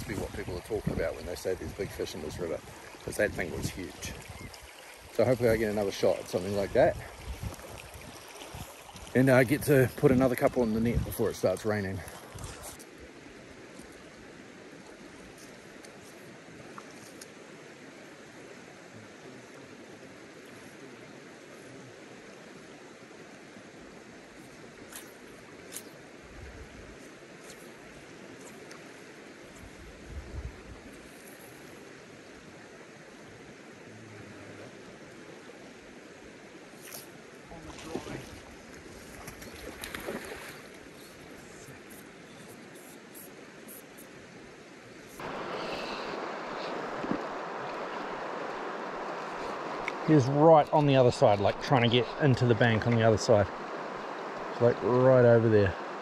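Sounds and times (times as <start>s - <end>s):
wind buffeting microphone: 0.0s - 5.2s, 6.6s - 8.8s, 9.6s - 11.3s, 29.8s - 30.9s
river current rushing: 0.0s - 56.0s.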